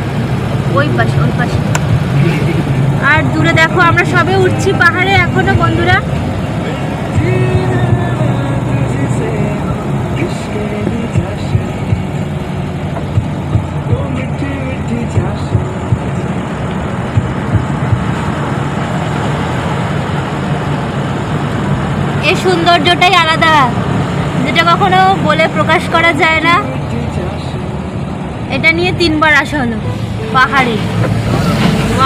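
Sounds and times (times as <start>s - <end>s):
car engine and road noise: 0.0s - 32.0s.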